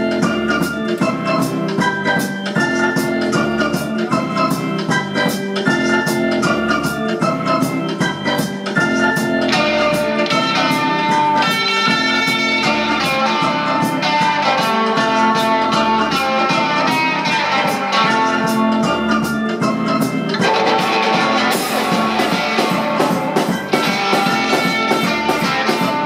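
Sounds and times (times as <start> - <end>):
drum kit beat: 0.0 - 26.0
electric guitar: 0.0 - 26.0.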